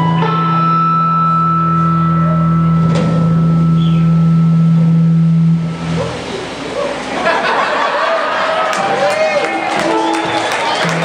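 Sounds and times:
electric guitar note ringing: 0.0 - 6.8
crowd noise: 5.6 - 11.0.

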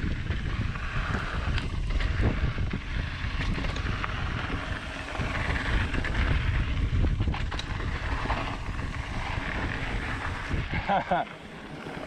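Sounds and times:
wind buffeting microphone: 0.0 - 11.2
bike knocking and rattling: 0.0 - 12.0.

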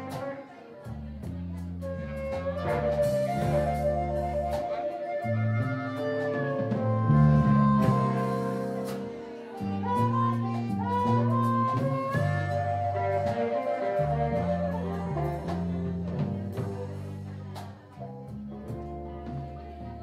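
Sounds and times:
live band playing: 0.0 - 20.0
harmonica bending notes: 2.3 - 15.9.

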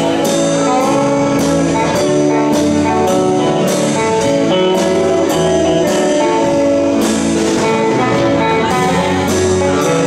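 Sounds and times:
live band playing: 0.0 - 10.0
saxophone: 0.0 - 10.0.

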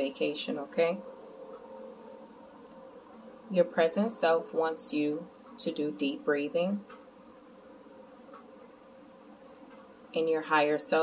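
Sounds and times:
background buzz and hiss: 0.0 - 11.0.

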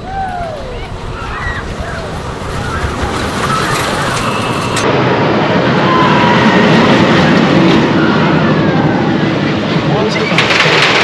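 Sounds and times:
roller coaster rumbling on track: 0.0 - 11.0.

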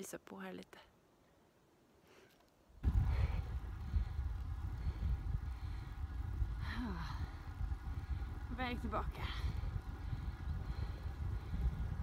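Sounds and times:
wind buffeting microphone: 2.8 - 12.0.

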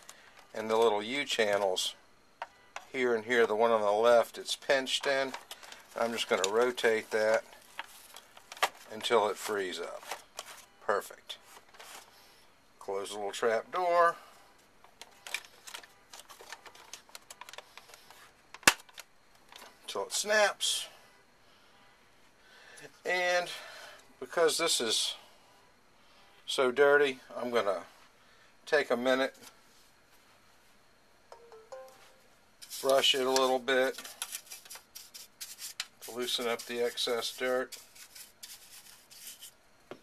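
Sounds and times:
brush scrubbing plastic: 33.8 - 39.6.

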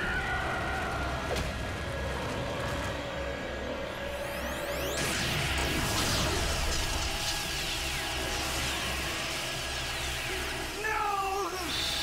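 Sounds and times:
crackling zapping energy blast: 4.1 - 12.0.

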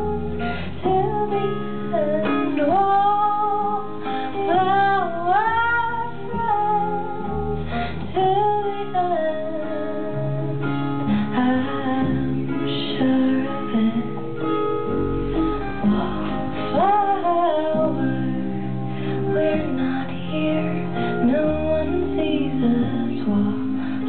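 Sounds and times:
strummed acoustic guitar: 0.0 - 24.0
woman singing: 0.0 - 24.0.

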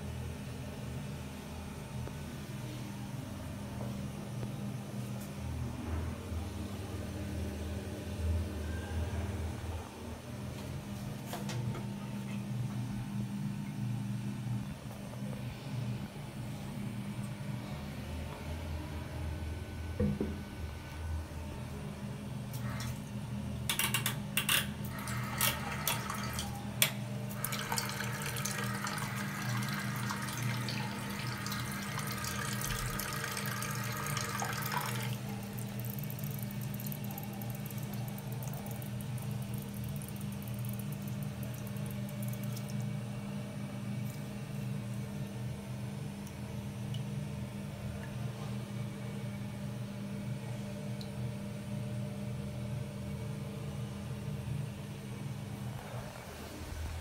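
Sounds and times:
toilet cistern refilling: 24.8 - 26.6, 27.3 - 42.8.

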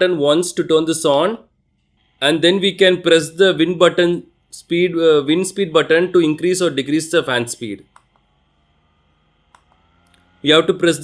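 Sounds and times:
fan motor whine: 1.5 - 11.0.

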